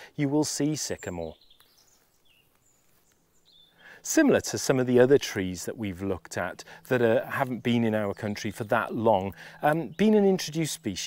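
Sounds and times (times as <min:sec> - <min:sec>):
high bird chirps: 0:00.8 - 0:04.0.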